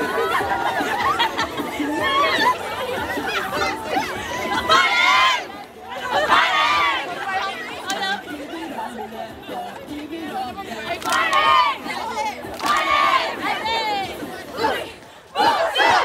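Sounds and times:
crowd shouting and chattering: 0.0s - 16.0s.

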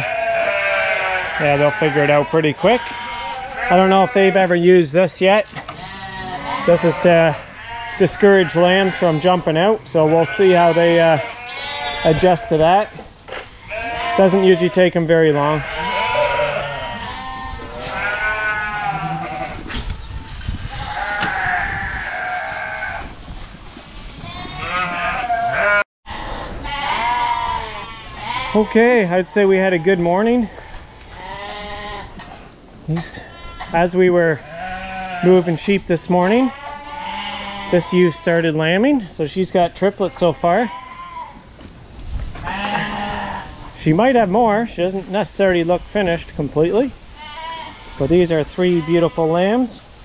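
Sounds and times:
sheep bleating: 0.0s - 4.8s, 5.7s - 19.8s, 20.7s - 23.0s, 24.2s - 32.2s, 33.1s - 35.6s, 36.3s - 38.6s, 39.8s - 41.4s, 42.4s - 43.7s, 47.1s - 49.6s.

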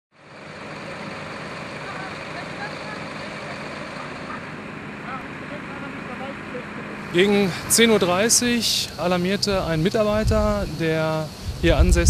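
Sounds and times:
fire engine hum: 0.1s - 12.0s
faint voices: 1.7s - 11.9s.

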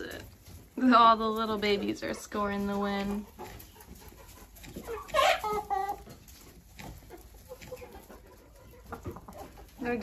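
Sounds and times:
hens squawking and clucking: 0.0s - 10.0s.

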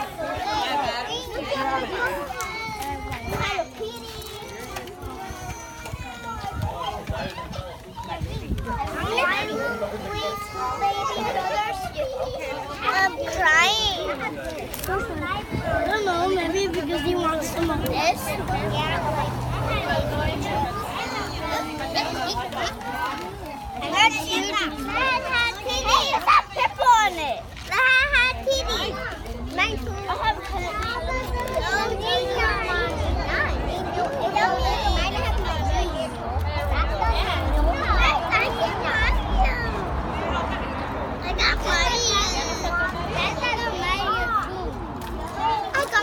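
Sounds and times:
adult voices: 0.0s - 46.0s
children chattering and calling out: 0.0s - 46.0s.

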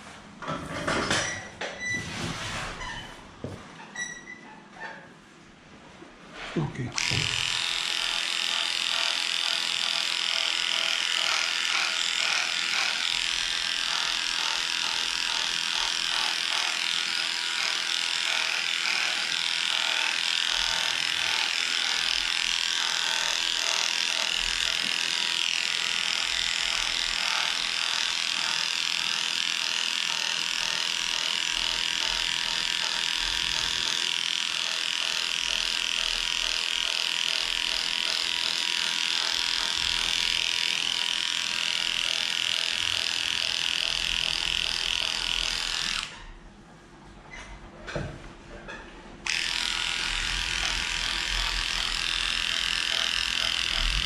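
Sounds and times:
electric hair clipper running: 6.9s - 46.3s, 49.2s - 54.0s.

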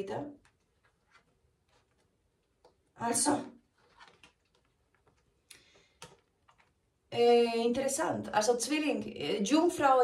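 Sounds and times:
cards rustling: 3.7s - 6.8s.

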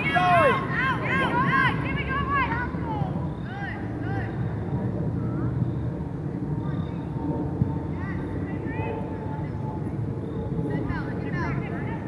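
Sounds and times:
distant voices shouting: 0.0s - 12.0s.

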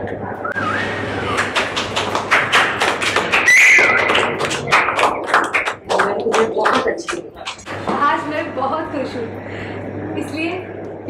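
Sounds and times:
loud steady whistle: 0.5s - 1.4s, 3.4s - 4.2s
group clapping: 0.9s - 7.7s
voices: 5.8s - 9.4s.

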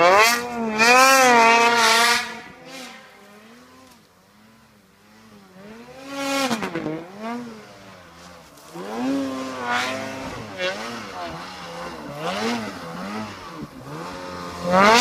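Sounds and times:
snowmobile engine revving: 0.0s - 15.0s.

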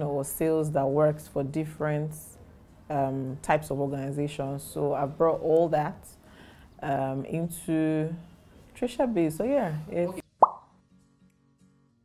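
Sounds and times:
faint background music: 0.0s - 12.0s
rising bloop sound effect: 10.4s - 10.7s.

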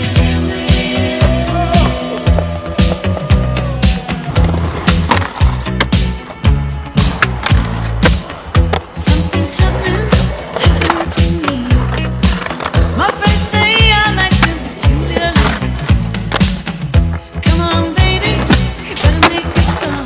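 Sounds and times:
music with steady beat: 0.0s - 19.8s
skateboards rolling on concrete: 0.0s - 20.0s
skateboard clacks: 7.0s - 20.0s.

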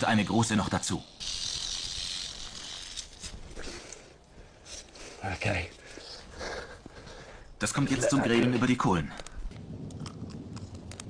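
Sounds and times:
rattlesnake rattling: 0.0s - 4.1s.

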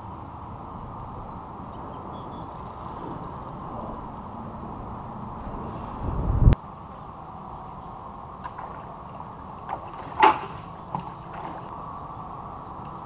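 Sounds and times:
steady background hum: 0.0s - 13.0s
low rumble: 2.8s - 6.6s.

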